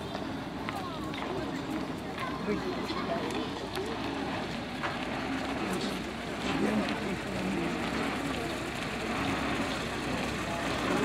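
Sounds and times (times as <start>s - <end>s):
voices of people nearby: 0.0s - 11.0s
jeep engine running at low speed: 4.0s - 11.0s.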